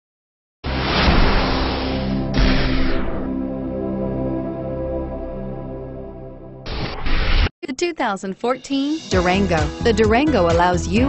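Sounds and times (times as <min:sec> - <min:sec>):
loud rushing whoosh: 0:00.7 - 0:03.4.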